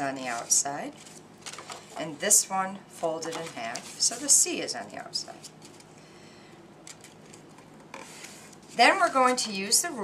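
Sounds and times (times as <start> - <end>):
paper rustling and folding: 0.2 - 2.0, 3.2 - 4.4.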